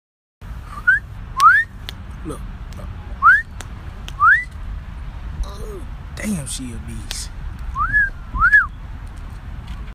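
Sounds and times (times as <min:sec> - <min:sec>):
low rumble of wind: 0:00.4 - 0:09.9
person whistling: 0:00.7 - 0:01.7, 0:03.2 - 0:03.5, 0:04.2 - 0:04.5, 0:07.8 - 0:08.7.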